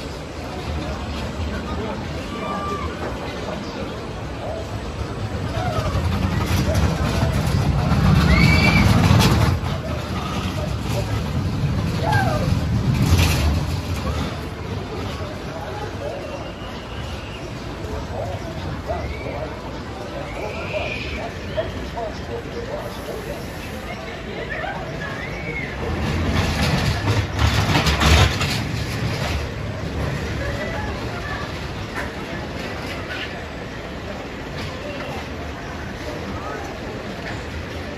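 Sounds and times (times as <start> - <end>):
faint voices of people: 0.0 - 37.9
roller coaster wheels rumbling: 0.0 - 37.9.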